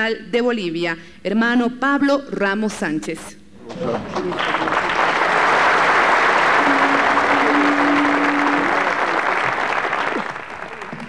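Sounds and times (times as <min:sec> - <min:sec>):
audience applauding: 0:04.1 - 0:11.0
steady low tone: 0:06.5 - 0:10.0.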